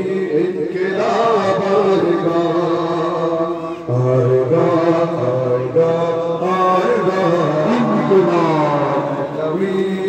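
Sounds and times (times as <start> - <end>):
men chanting a lament: 0.0 - 10.0.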